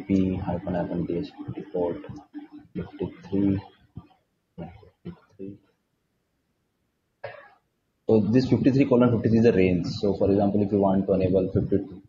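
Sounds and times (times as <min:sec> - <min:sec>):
single cough: 0:07.2 - 0:07.6.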